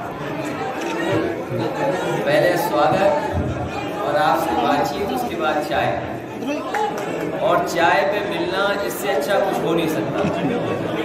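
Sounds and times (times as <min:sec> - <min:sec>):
murmur of crowd voices: 0:00.0 - 0:11.0.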